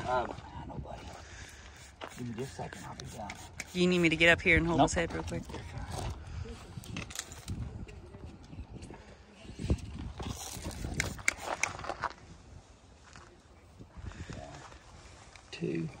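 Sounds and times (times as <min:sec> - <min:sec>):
spray bottle hiss: 0:01.7 - 0:04.2.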